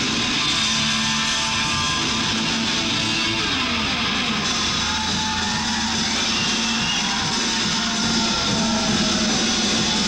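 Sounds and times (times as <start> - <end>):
distorted electric guitar: 0.0 - 10.0
heavy metal band playing: 0.0 - 10.0.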